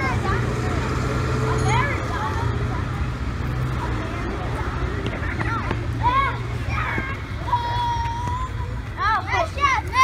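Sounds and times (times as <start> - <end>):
children squealing and shouting: 5.3 - 10.0.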